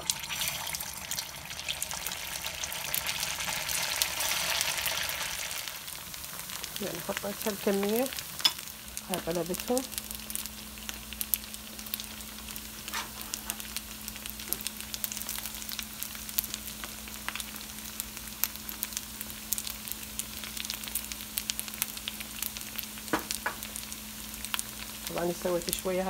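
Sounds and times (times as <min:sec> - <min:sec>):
faint steady hum: 0:00.0 - 0:26.0
food frying in hot oil: 0:00.0 - 0:26.0.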